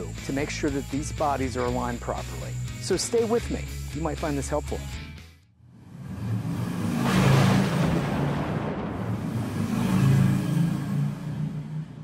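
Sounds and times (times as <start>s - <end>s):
racing car engine revving: 5.8s - 12.0s.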